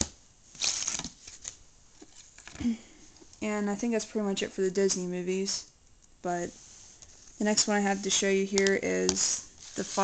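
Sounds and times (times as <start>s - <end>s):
plastic cases rustling and scraping: 6.8s - 10.0s.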